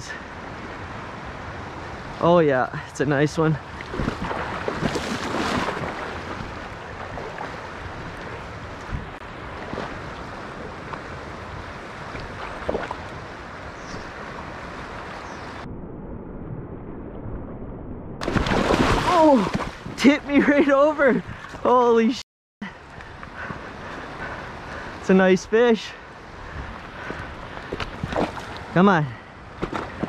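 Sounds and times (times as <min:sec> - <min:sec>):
river current rushing and lapping: 0:00.0 - 0:15.7, 0:18.2 - 0:22.0, 0:22.7 - 0:30.0
wind on microphone: 0:03.6 - 0:20.0.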